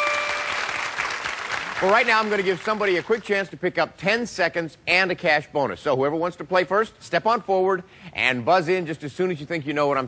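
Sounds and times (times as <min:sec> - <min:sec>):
audience applauding: 0:00.0 - 0:03.3.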